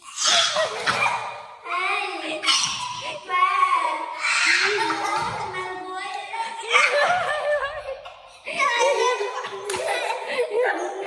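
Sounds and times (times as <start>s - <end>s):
children laughing and squealing: 0.0s - 11.0s.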